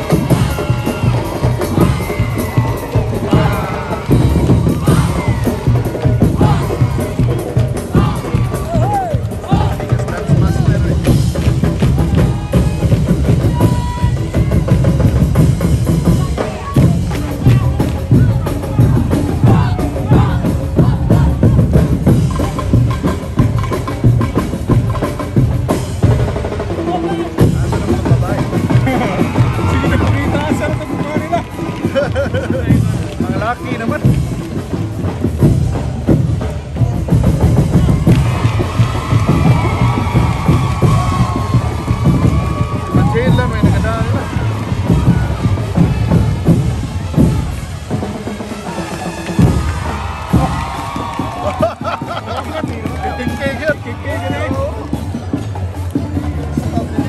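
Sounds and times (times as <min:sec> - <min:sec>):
bass drum and snare beats: 0:00.0 - 0:57.0.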